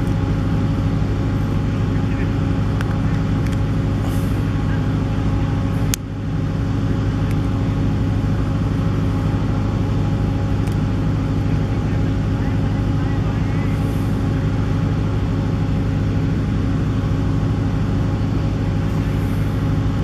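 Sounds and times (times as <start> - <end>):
steady engine-like drone: 0.0 - 20.0.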